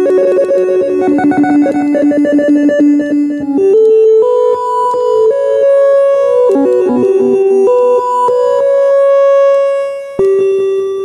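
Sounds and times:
warbling synthesizer with delay: 0.0 - 8.8.

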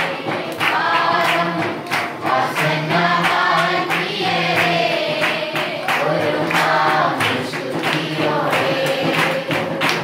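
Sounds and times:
congregation singing: 0.0 - 10.0
steady sharp strikes: 0.0 - 10.0.

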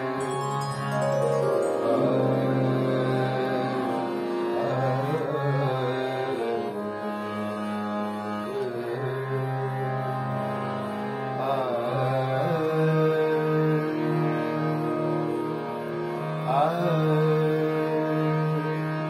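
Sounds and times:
harmonium playing chords and melody: 0.0 - 19.0.

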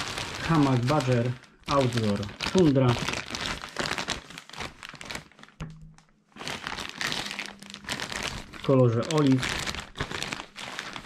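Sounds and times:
plastic packaging crinkling: 0.0 - 5.7, 6.3 - 11.0.

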